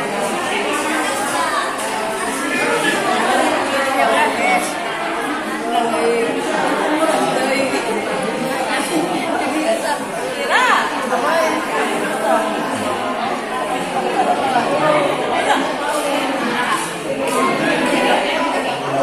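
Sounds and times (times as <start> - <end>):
crowd chatter: 0.0 - 19.0.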